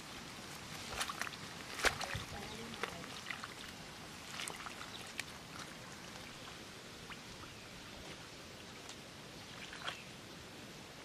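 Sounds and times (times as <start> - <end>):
hands digging in wet mud: 0.5 - 5.8
water drips: 0.5 - 10.1.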